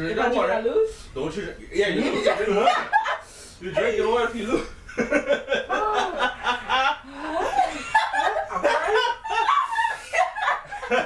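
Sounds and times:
group of people laughing: 0:02.2 - 0:03.3, 0:04.9 - 0:11.0.

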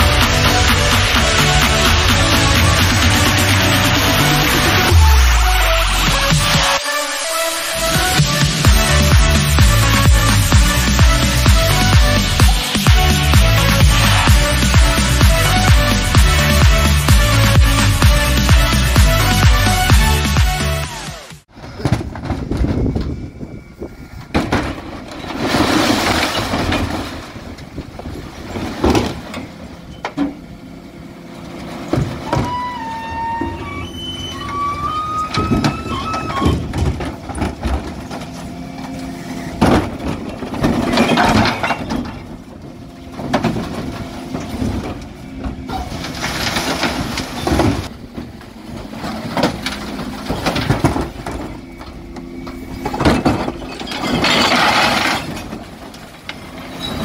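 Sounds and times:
truck engine and hydraulics hum: 0:00.0 - 0:57.0
glass and tins crashing into hopper: 0:24.4 - 0:27.4, 0:39.6 - 0:42.3, 0:52.7 - 0:55.9.

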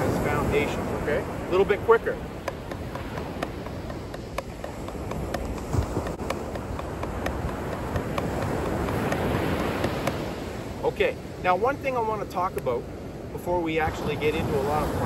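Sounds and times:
drumsticks on practice pad: 0:02.4 - 0:10.3.

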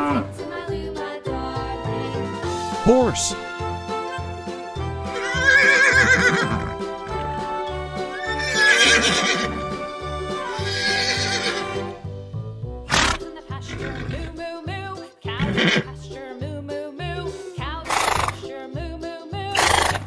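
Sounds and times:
background music with beat: 0:00.0 - 0:10.8
horse neighing: 0:05.0 - 0:07.2, 0:08.0 - 0:09.7, 0:10.4 - 0:11.9, 0:12.9 - 0:14.3, 0:15.4 - 0:15.9, 0:17.8 - 0:18.4, 0:19.5 - 0:20.0.

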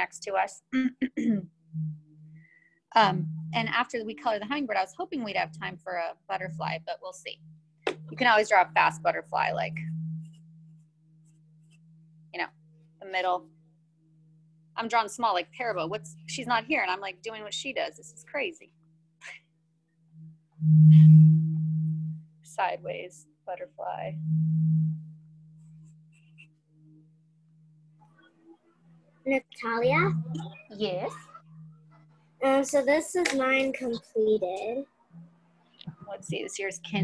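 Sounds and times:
steady low hum: 0:00.0 - 0:19.4, 0:20.2 - 0:28.0, 0:35.8 - 0:37.0.

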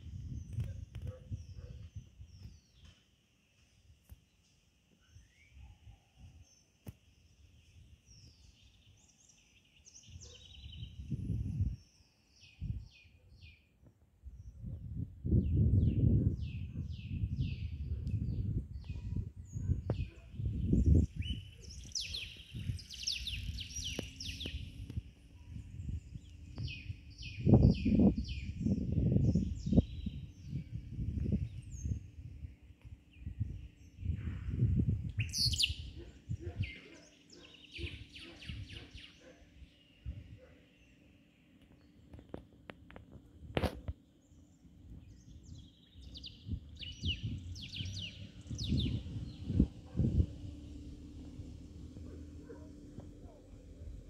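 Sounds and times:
small birds chirping: 0:00.0 - 0:13.8, 0:15.4 - 0:54.0
low rumbling gusts: 0:14.6 - 0:32.6, 0:33.2 - 0:36.8, 0:44.8 - 0:54.0.

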